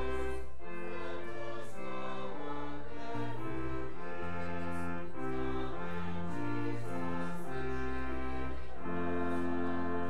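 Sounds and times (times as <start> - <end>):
church organ chords: 0.0 - 10.0.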